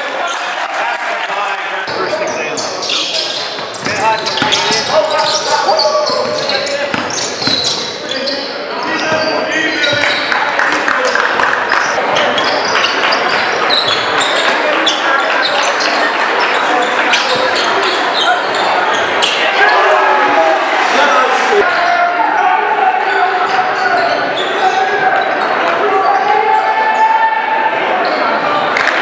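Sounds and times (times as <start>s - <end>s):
echoing voices: 0.0s - 29.0s.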